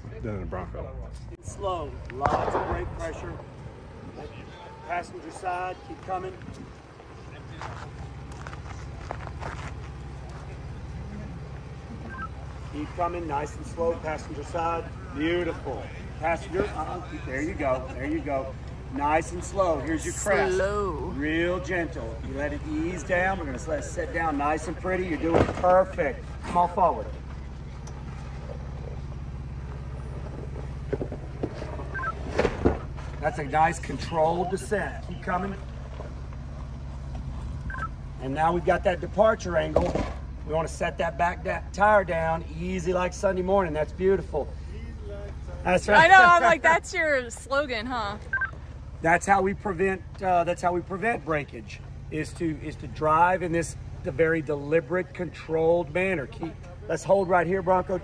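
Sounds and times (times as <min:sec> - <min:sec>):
suv engine running low: 0:00.0 - 0:58.0
short high beep: 0:12.0 - 0:12.4, 0:48.2 - 0:48.6.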